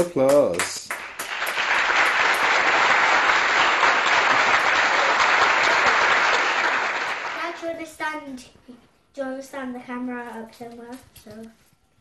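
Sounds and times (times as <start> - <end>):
applause: 0.0 - 7.8.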